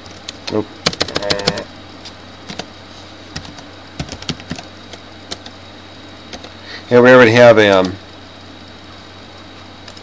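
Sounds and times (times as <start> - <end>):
typing on computer keyboard: 0.1 - 1.6, 3.4 - 4.7, 5.3 - 5.5.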